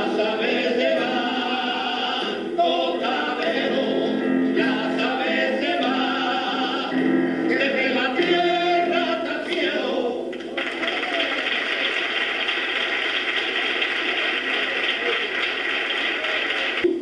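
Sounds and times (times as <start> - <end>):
man singing: 0.0 - 10.3
applause: 10.3 - 17.0.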